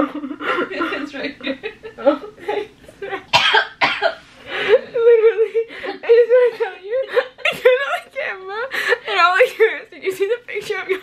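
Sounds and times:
woman laughing hard: 0:04.5 - 0:09.4.

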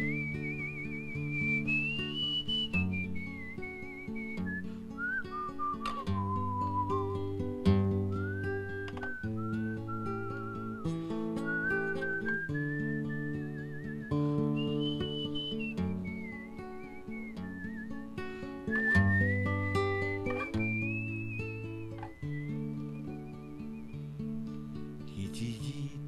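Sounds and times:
acoustic guitar chords: 0:00.0 - 0:26.0
man whistling melody: 0:00.0 - 0:26.0.

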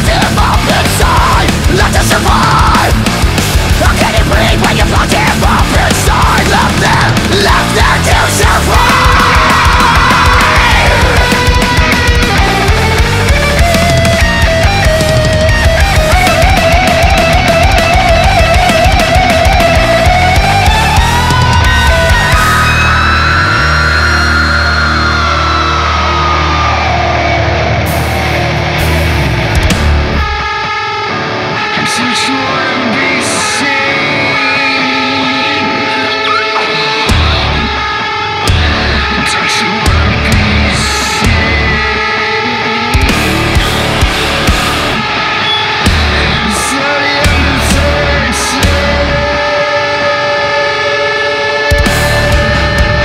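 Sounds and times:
electric guitars low chord: 0:00.0 - 0:53.0
heavy metal song: 0:00.0 - 0:53.0.

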